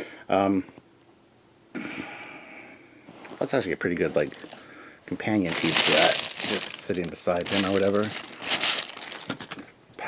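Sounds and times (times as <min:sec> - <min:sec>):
packaging crinkling: 0:05.3 - 0:09.7.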